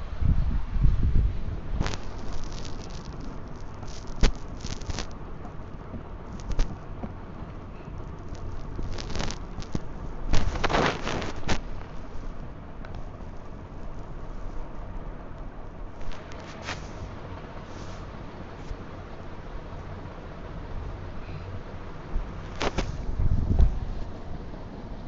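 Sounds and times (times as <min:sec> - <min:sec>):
plastic packet crinkling: 0:01.8 - 0:05.1, 0:08.1 - 0:11.7.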